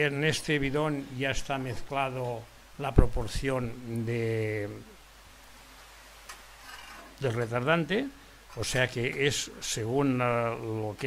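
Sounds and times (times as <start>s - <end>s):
hand tools rustling: 6.3s - 7.8s.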